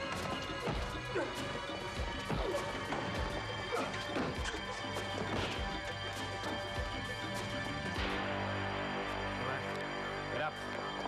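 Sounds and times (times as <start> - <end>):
tense background music: 0.0 - 11.0
men grunting: 0.1 - 5.4.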